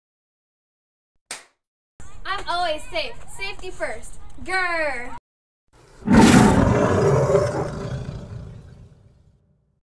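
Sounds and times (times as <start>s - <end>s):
big cat roaring: 6.0s - 9.2s.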